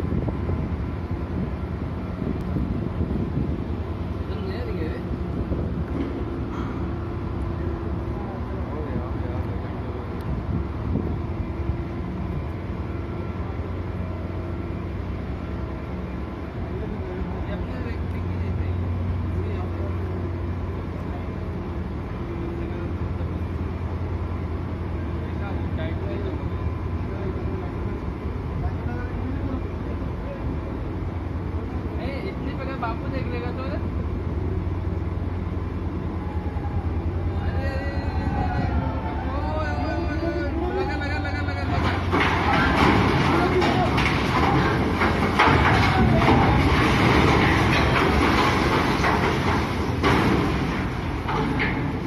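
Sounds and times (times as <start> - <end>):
ship engines droning: 0.0 - 52.0.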